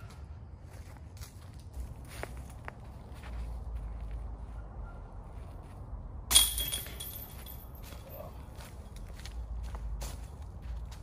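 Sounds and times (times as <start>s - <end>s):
footsteps on dry leaves: 0.0s - 4.6s, 7.4s - 11.0s.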